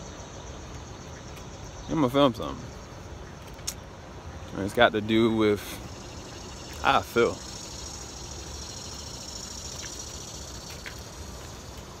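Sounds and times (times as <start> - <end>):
high-pitched insect drone: 5.9 - 11.8.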